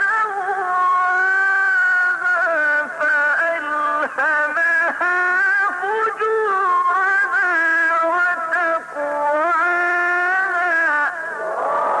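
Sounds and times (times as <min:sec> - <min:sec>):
audience cheering and applauding: 0:11.4 - 0:12.0.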